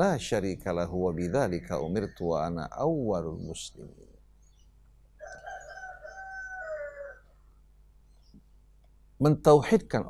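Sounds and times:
rooster crowing: 5.2s - 7.5s.

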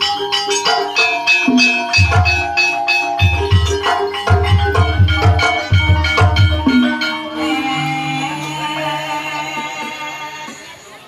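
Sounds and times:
gongs: 0.0s - 10.8s
metallophone notes ringing: 0.0s - 11.0s.

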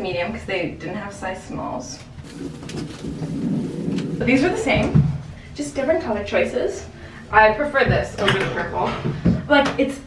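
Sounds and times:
fleece sweater rustling: 2.2s - 4.4s.

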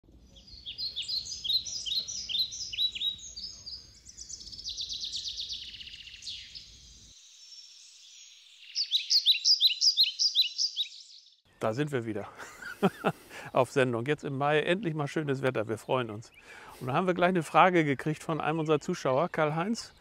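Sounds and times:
songbirds chirping and trilling: 0.1s - 20.0s.

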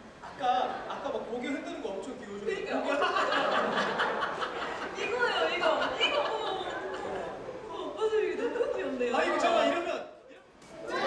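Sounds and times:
background chatter: 0.0s - 11.0s
people talking: 0.3s - 10.0s.

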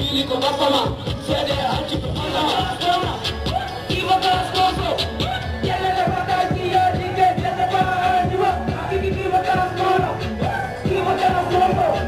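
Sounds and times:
loud backing music: 0.0s - 12.0s
steady drum beat: 0.0s - 12.0s.

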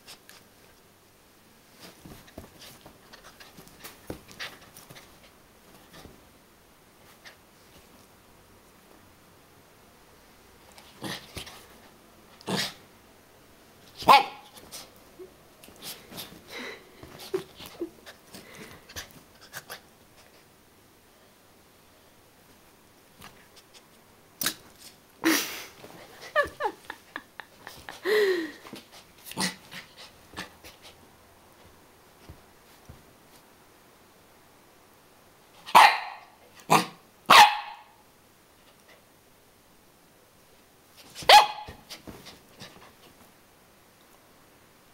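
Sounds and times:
small dog barking: 14.0s - 14.5s, 35.6s - 38.0s, 41.2s - 41.9s.

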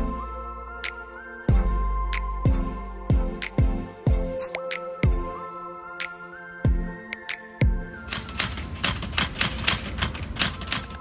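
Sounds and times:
background music: 0.0s - 11.0s
typewriter keys striking: 8.1s - 11.0s.

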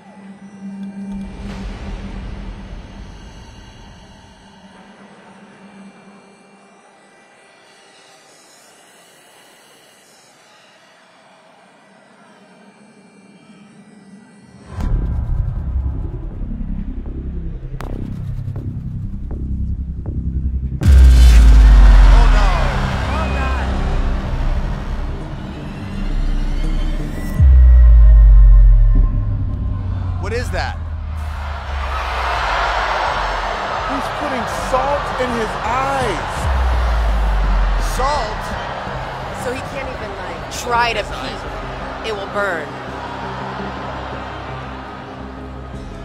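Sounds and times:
dramatic background music: 0.0s - 9.2s, 13.0s - 46.0s.

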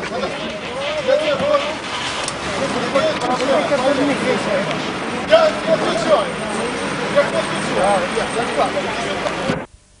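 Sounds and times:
crowd talking: 0.0s - 9.7s
street background noise: 0.0s - 9.7s.

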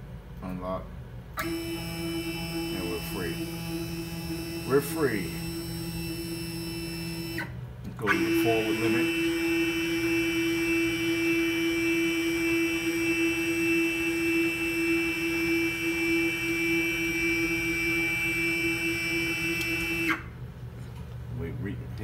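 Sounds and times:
stepper motors whining: 1.4s - 20.3s.

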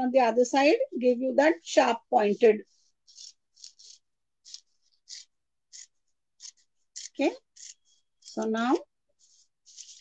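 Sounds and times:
scissors snipping paper: 2.7s - 10.0s.

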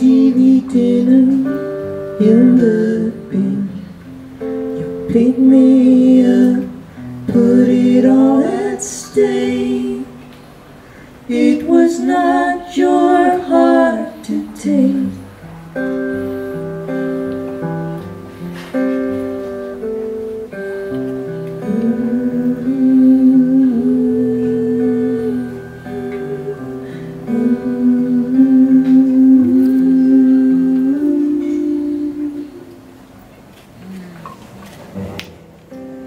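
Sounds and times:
man and woman humming melody: 0.0s - 10.3s, 20.4s - 33.0s
strummed acoustic guitar: 0.0s - 32.7s.

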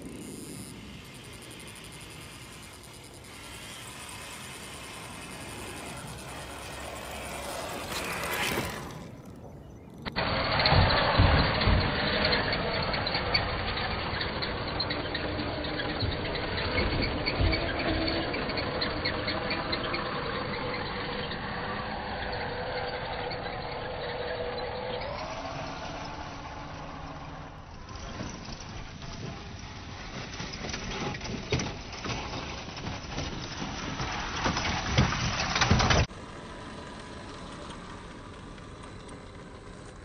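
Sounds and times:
toy car electric motor whining: 0.0s - 40.0s.

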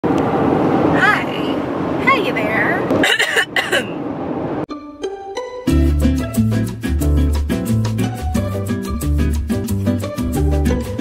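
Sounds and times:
car road and engine rumble: 0.0s - 4.7s.

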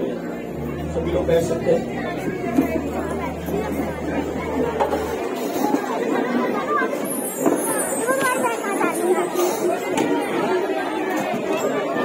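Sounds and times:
many people talking: 0.0s - 12.0s
steady low hum: 0.3s - 5.4s.

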